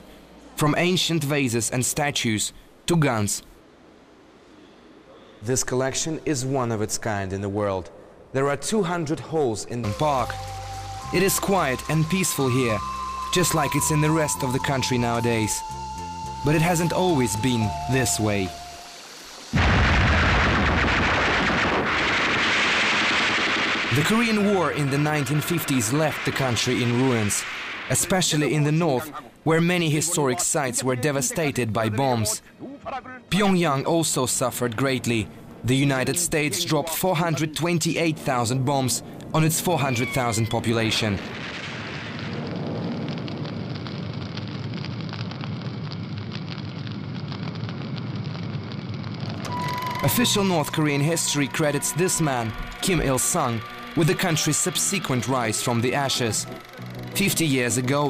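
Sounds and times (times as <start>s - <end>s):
fire crackling and rumbling: 6.9s - 30.5s, 33.3s - 58.0s
rapid machine-gun fire: 19.6s - 27.9s.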